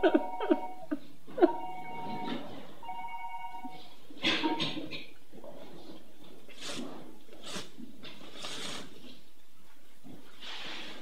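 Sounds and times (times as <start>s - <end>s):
woman crying: 0.0s - 1.6s.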